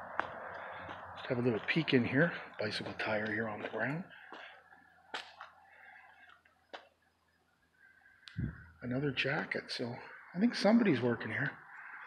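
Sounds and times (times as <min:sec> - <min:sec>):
faint footsteps on concrete: 0:00.0 - 0:07.6.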